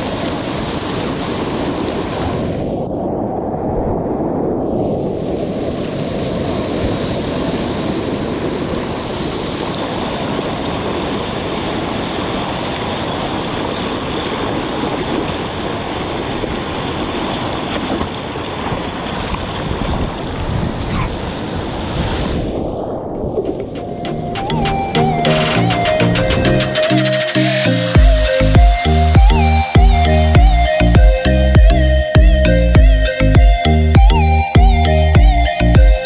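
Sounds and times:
water rushing and splashing: 0:00.0 - 0:36.0
wind buffeting microphone: 0:00.0 - 0:36.0
thin steady high tone: 0:23.9 - 0:36.0.

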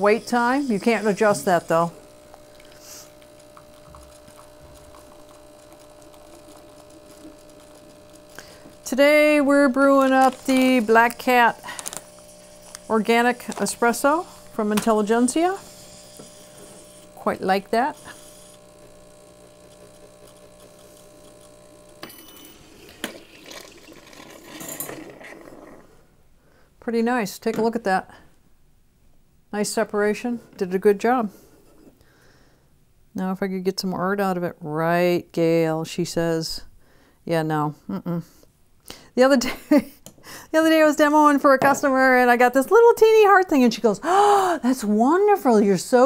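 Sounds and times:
espresso machine pump humming: 0:00.0 - 0:25.9.

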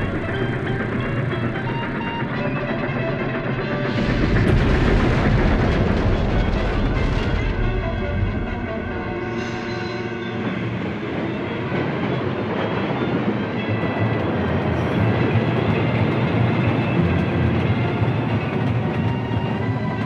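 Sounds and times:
music playing: 0:00.0 - 0:20.0
speeding train on rails: 0:00.0 - 0:20.0.

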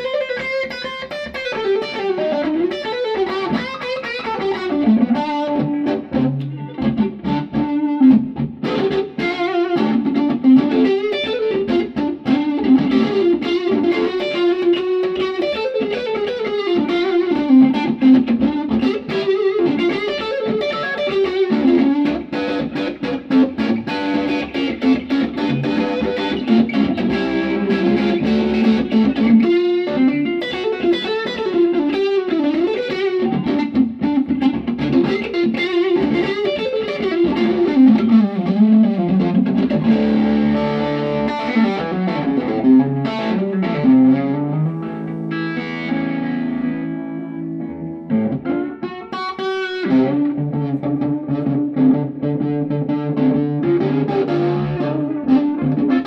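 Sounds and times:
overdriven electric guitar lead: 0:00.0 - 0:56.0.

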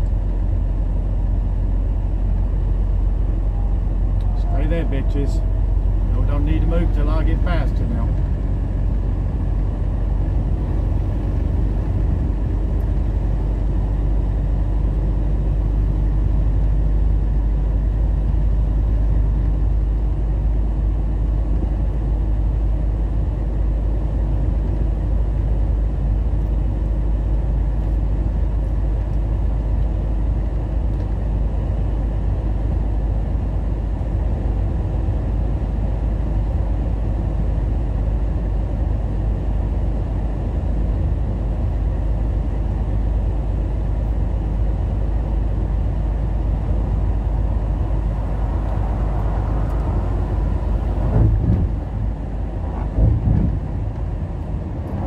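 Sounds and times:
truck engine drone: 0:00.0 - 0:55.0.

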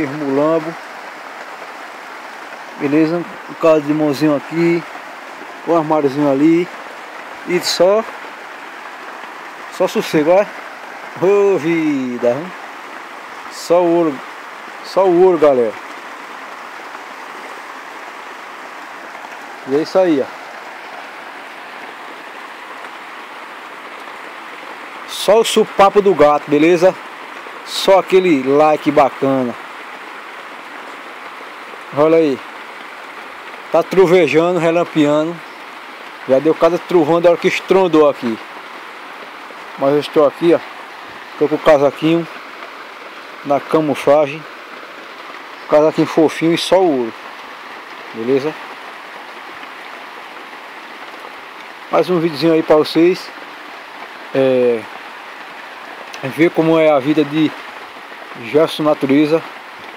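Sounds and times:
steady rain: 0:00.0 - 0:59.9.

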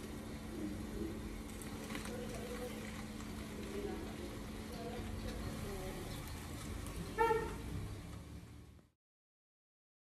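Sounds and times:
faint distant voices: 0:00.0 - 0:08.0.

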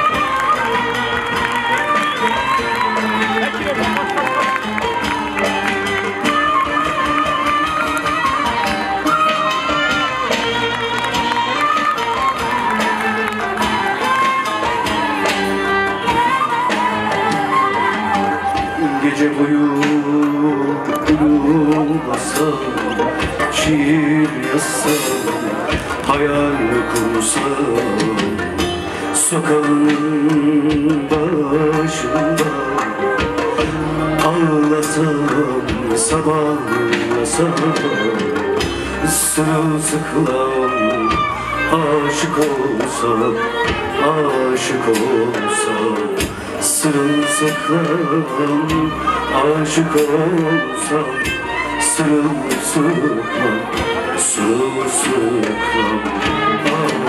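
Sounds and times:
drums: 0:00.0 - 0:57.0
percussion: 0:00.0 - 0:57.0.

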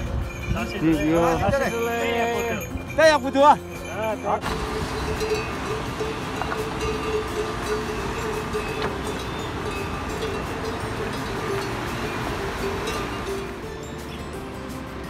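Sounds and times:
stream rushing over boulders: 0:04.4 - 0:13.7.

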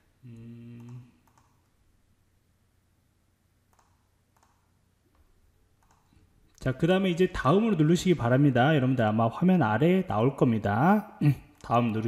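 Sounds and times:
faint clicks: 0:00.3 - 0:01.8, 0:03.7 - 0:06.7.

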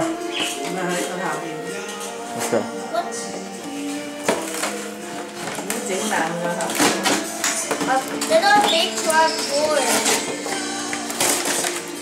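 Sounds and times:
background music with held notes: 0:00.0 - 0:12.0
cardboard packaging tearing: 0:06.6 - 0:12.0.

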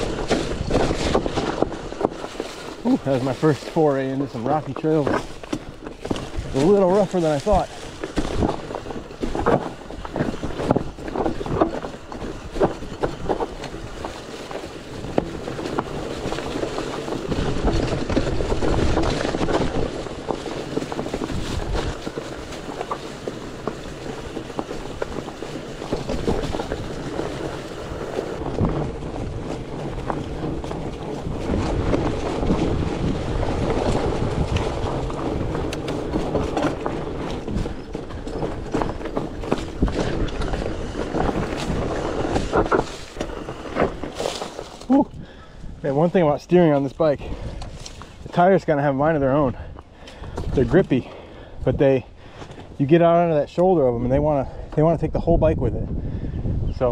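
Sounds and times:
tyres rolling on leaves and rock: 0:00.0 - 0:55.7
bike knocking and rattling: 0:00.0 - 0:56.9.

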